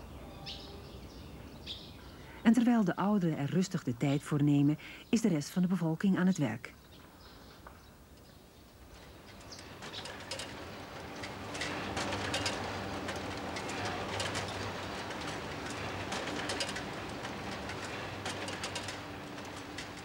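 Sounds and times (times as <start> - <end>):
machinery clicking and clattering: 9.0 - 20.0
machinery humming: 9.0 - 20.0.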